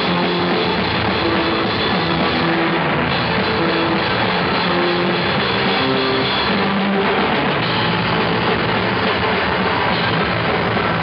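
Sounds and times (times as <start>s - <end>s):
drum kit and cymbals: 0.0s - 11.0s
live rock band playing: 0.0s - 11.0s.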